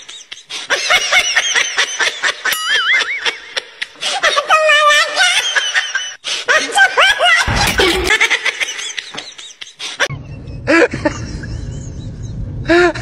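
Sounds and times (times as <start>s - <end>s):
laughter: 0.0s - 13.0s.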